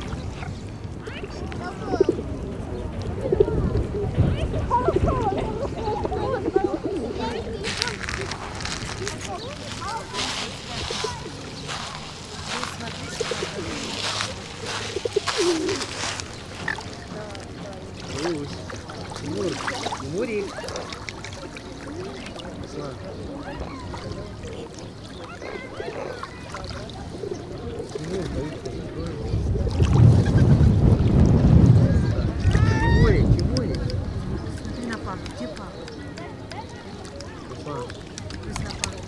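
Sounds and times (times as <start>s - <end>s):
wind buffeting microphone: 0.0s - 20.7s, 22.5s - 39.0s
small waves lapping: 4.6s - 30.8s.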